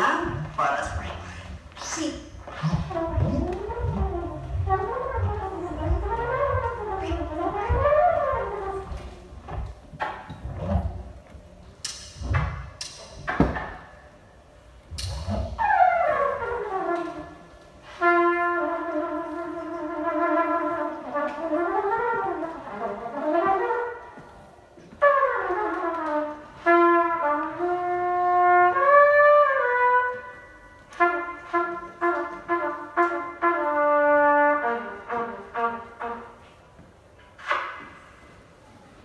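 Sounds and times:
held horn note: 0.0s - 9.2s
low thumps: 0.0s - 14.0s
sharp knocks: 11.8s - 13.9s.

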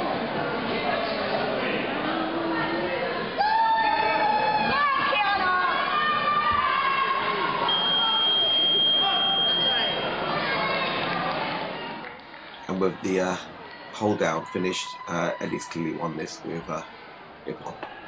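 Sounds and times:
spectators shouting and cheering: 0.0s - 18.0s.

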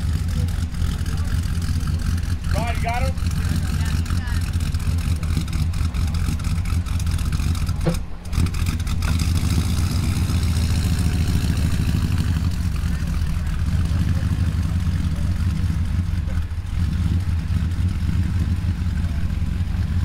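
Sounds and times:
pickup truck engine rumbling: 0.0s - 20.0s.

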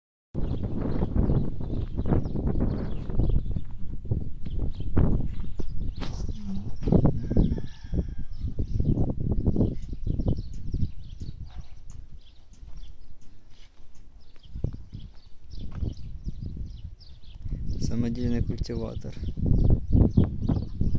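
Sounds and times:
small birds chirping: 0.4s - 20.9s
wind buffeting microphone: 0.4s - 20.9s.

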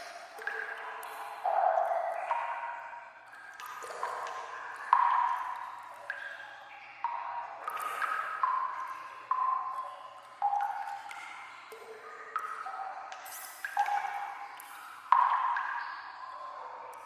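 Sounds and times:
water drops plinking in tunnel: 0.0s - 17.0s.

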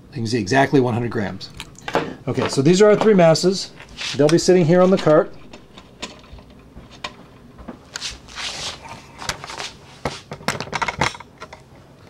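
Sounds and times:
rustles and scrapes: 3.6s - 11.6s.

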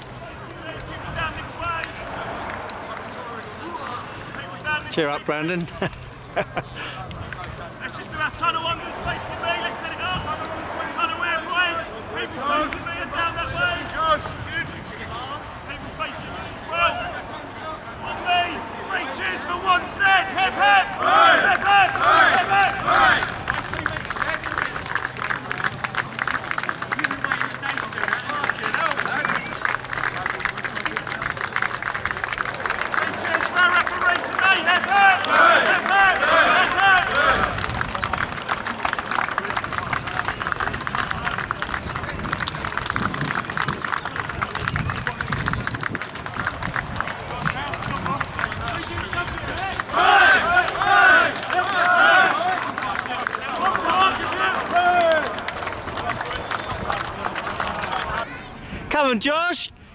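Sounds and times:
people shouting: 17.9s - 23.3s, 33.0s - 37.6s, 49.4s - 52.6s, 53.4s - 55.4s.

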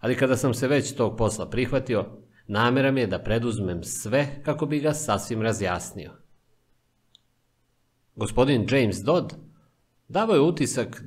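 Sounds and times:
man speaking: 0.0s - 6.3s, 8.2s - 9.5s, 10.1s - 11.0s
faint small click: 7.1s - 7.3s.

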